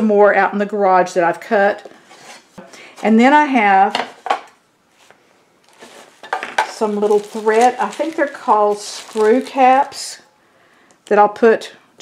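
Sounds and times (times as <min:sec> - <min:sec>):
paper rustling: 0:05.0 - 0:10.0.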